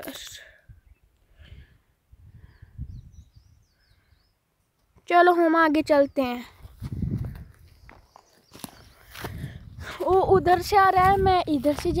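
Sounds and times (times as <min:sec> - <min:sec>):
footsteps on stony path: 0:06.5 - 0:12.0.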